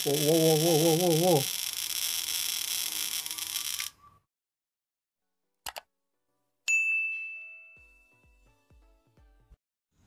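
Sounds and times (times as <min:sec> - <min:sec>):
man chanting: 0:00.0 - 0:01.5.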